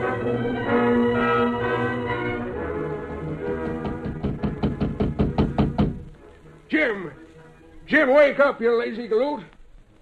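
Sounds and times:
rapid knocking on a door: 3.6 - 6.0.

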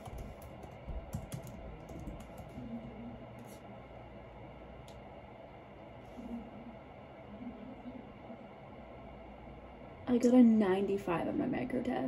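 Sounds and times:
laptop keyboard typing: 0.0 - 2.7.

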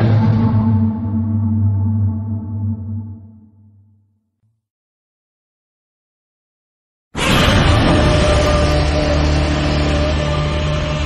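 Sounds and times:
deep low monster tone: 0.0 - 3.7.

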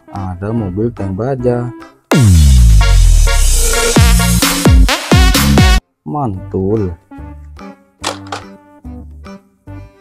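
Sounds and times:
background music with low thuds: 0.0 - 9.2.

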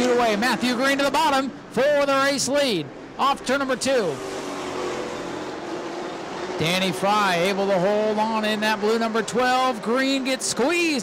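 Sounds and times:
distant race car engines humming: 0.0 - 11.0.

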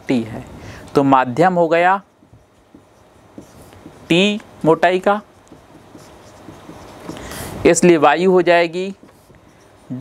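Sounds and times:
marker pen writing on whiteboard: 1.3 - 10.0
marker tip tapping: 2.2 - 4.6, 5.4 - 7.3.

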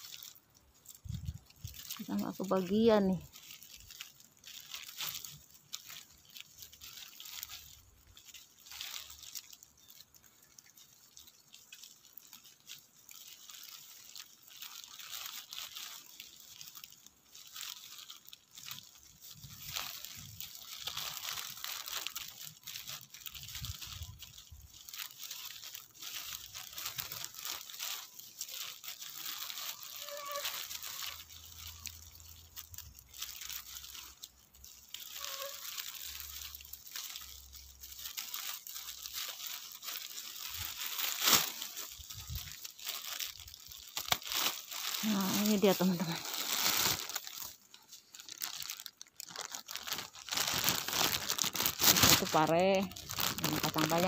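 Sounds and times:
leafy vines rustling and crackling: 0.0 - 54.0.

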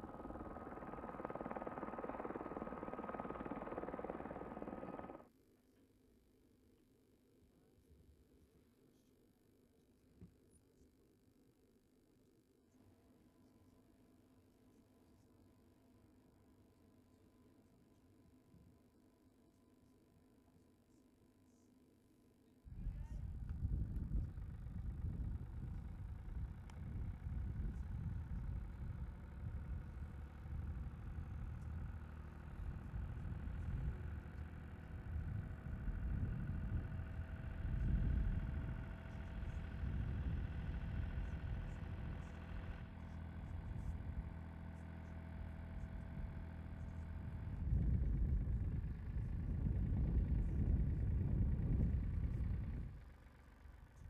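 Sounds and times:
winch engine rumble: 0.0 - 5.2, 22.8 - 44.6, 45.2 - 54.0
faint steady whine: 0.0 - 5.3, 12.4 - 54.0.

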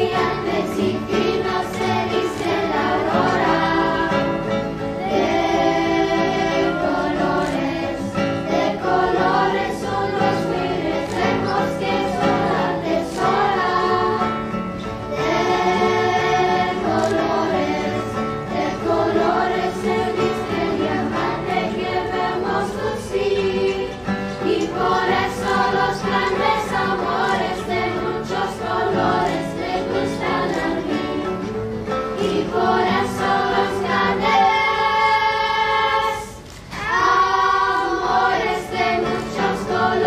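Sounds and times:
children's choir singing: 0.0 - 40.0.

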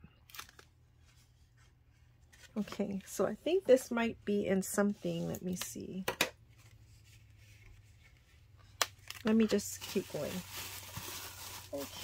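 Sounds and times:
cardboard crinkle: 9.0 - 12.0.

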